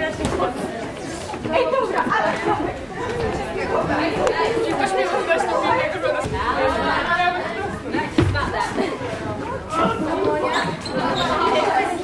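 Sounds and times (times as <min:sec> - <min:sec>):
group of people chattering: 0:00.0 - 0:12.0.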